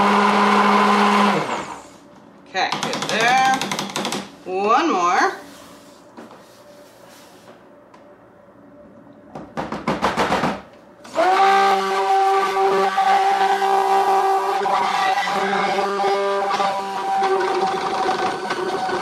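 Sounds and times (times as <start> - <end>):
stick blender motor hum: 0.0 - 2.0, 11.0 - 19.0.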